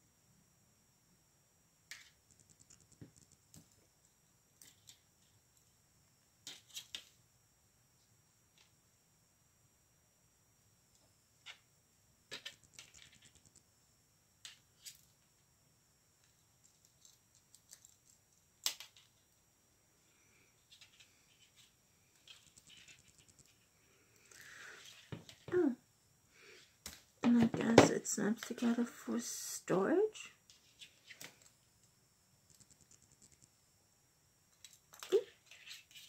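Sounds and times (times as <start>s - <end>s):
person speaking: 25.5s - 25.8s, 27.2s - 30.4s.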